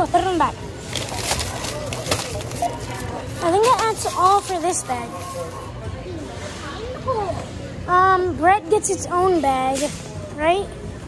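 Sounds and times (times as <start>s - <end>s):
plastic bags rustling: 0.8s - 5.7s.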